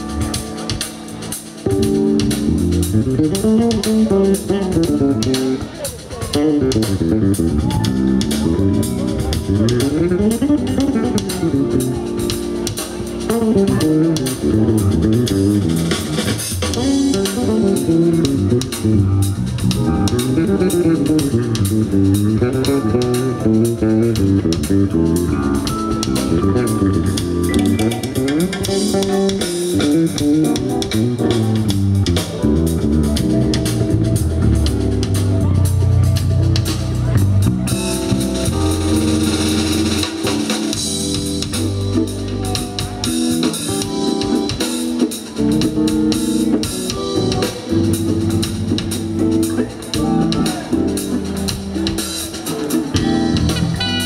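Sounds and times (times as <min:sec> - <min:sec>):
electric bass guitar: 0:00.0 - 0:54.0
jazz band playing: 0:00.0 - 0:54.0.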